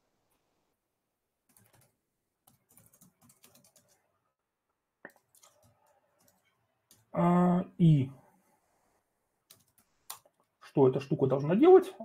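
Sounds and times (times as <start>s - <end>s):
computer keyboard keystroke: 1.5s - 4.0s, 9.5s - 10.3s.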